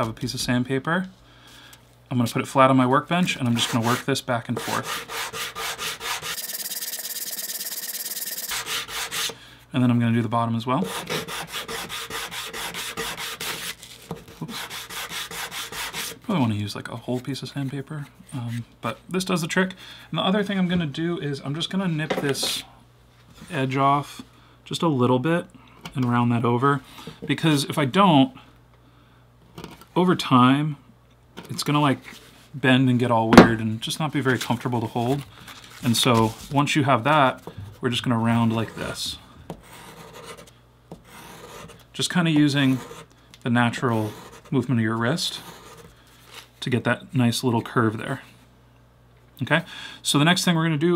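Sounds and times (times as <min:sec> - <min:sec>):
leather rasping on sandpaper: 0:04.6 - 0:09.4, 0:10.9 - 0:16.2
leather sanded on sandpaper: 0:07.0 - 0:09.4.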